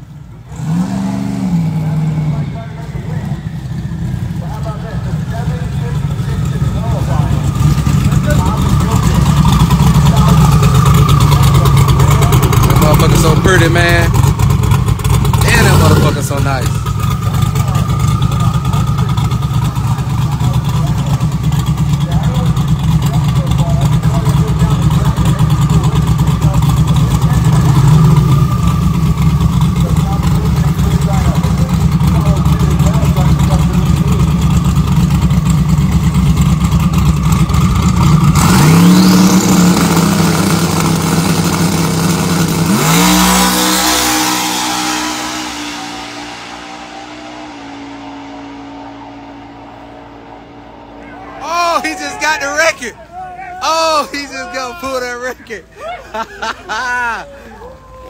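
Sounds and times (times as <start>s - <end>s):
drag car engine revving: 0.0s - 55.7s.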